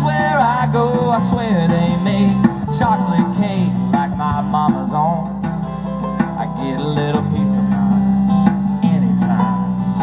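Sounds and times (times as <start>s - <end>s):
strummed acoustic guitars: 0.0s - 10.0s.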